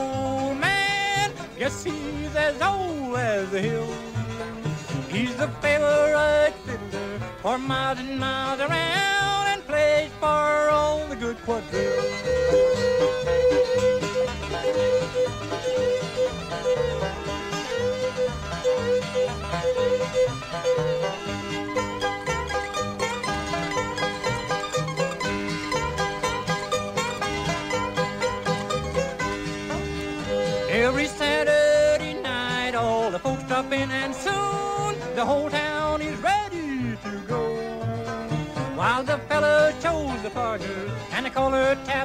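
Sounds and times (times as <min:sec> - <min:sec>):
banjo: 0:00.0 - 0:42.0
fiddle: 0:00.0 - 0:42.0
steady bass rhythm: 0:12.2 - 0:33.1.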